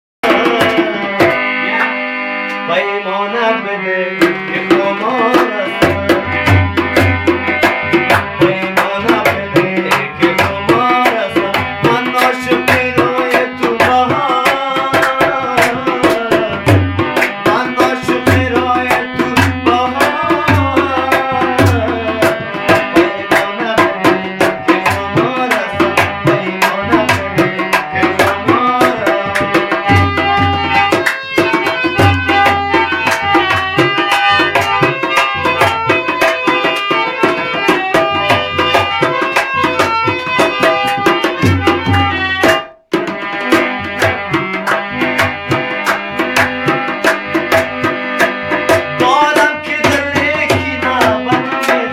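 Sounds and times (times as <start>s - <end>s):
man singing: 0.2s - 1.6s, 2.6s - 41.8s, 48.2s - 51.9s
tabla drumming: 0.2s - 2.8s, 4.1s - 51.9s
harmonium chords: 0.2s - 51.9s.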